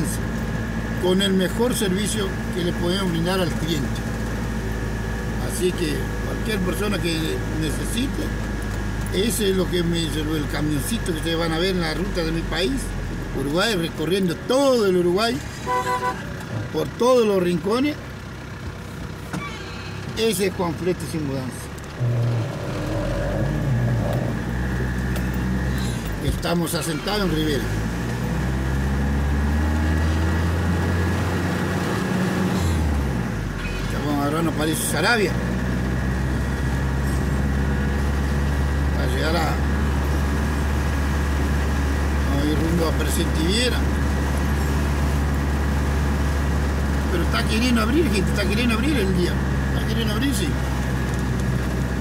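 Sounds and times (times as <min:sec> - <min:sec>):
road noise: 0:00.0 - 0:52.0
truck engine humming: 0:00.0 - 0:52.0.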